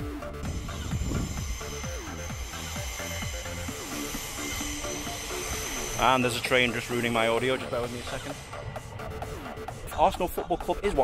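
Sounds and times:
electronic music with falling sweeps: 0:00.0 - 0:11.0
passing train rushing hiss: 0:00.2 - 0:10.8.

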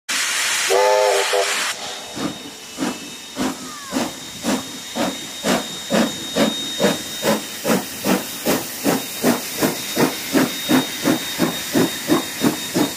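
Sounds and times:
steam hissing: 0:00.1 - 0:12.9
steam locomotive chuffing: 0:00.1 - 0:12.9.

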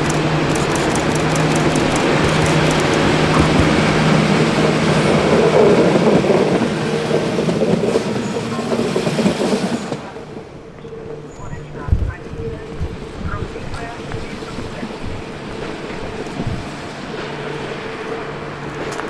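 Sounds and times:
diesel train engine drone: 0:00.0 - 0:19.0
train wheels rumbling on rails: 0:00.0 - 0:19.0.

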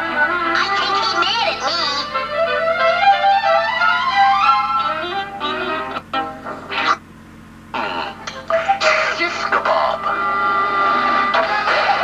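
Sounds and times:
cartoon music from television: 0:00.0 - 0:07.0, 0:07.8 - 0:12.0.

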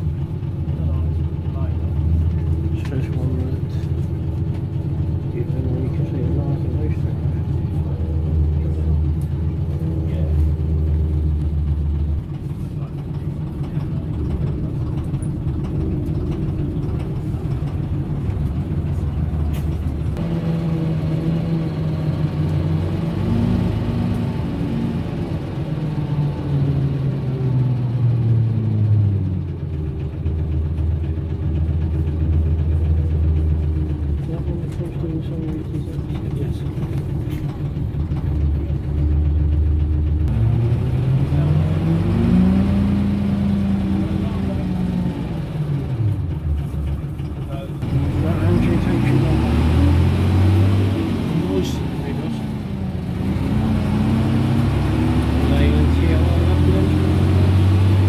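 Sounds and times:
bus engine running: 0:00.0 - 0:58.0.

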